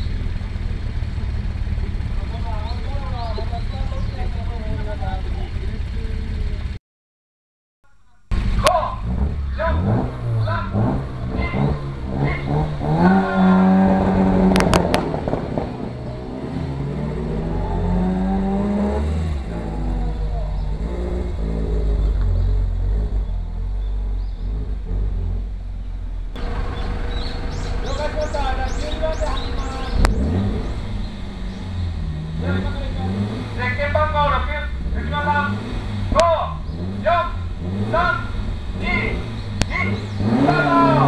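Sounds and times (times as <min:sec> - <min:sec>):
car driving off: 0:00.0 - 0:06.8, 0:08.3 - 0:41.0
car engine revving: 0:08.3 - 0:41.0.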